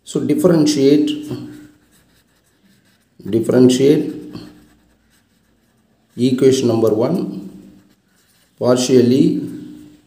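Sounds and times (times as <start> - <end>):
person speaking: 0.0 - 10.0
marker pen writing on paper: 1.0 - 10.0.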